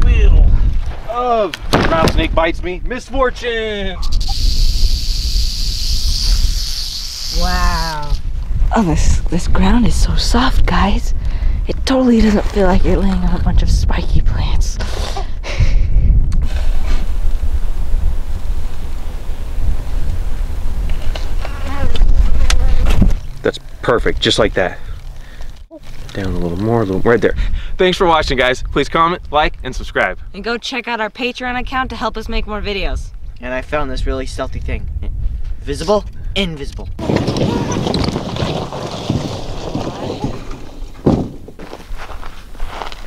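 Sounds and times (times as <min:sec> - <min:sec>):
wind on microphone: 0:00.0 - 0:01.1, 0:01.8 - 0:30.4, 0:31.5 - 0:41.6
bee flying close: 0:20.9 - 0:23.4.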